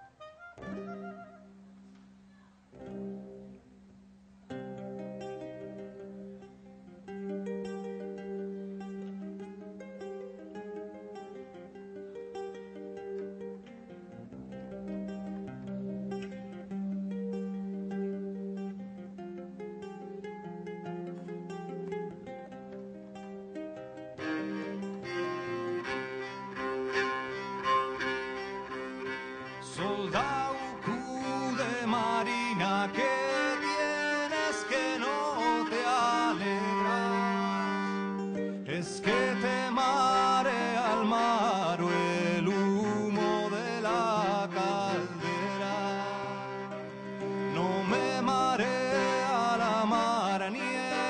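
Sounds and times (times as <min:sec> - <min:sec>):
acoustic folk music: 0:00.0 - 0:51.0
person singing: 0:24.2 - 0:51.0.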